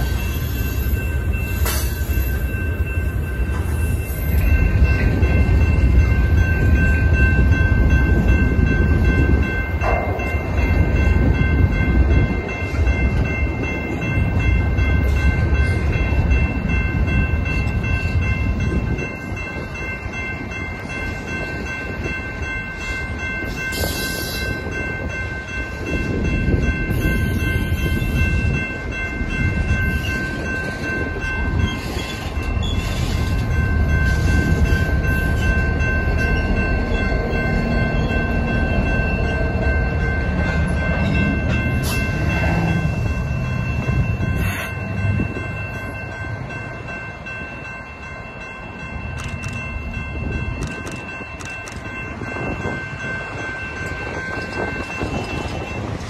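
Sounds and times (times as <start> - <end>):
train wheels rolling on rail: 0.0 - 56.0.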